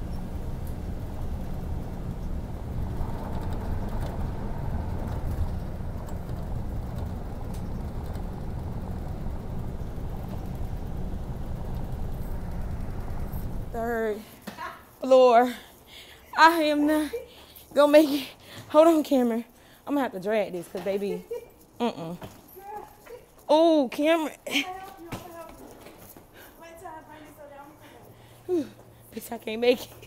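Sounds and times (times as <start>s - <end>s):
bus road and engine rumble: 0.0s - 15.9s
woman talking: 13.8s - 15.7s, 16.3s - 25.7s, 26.6s - 30.0s.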